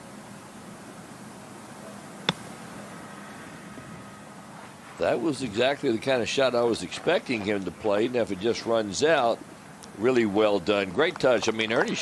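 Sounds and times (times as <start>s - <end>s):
steady outdoor hiss: 0.0s - 12.0s
golf club striking ball: 2.2s - 2.6s.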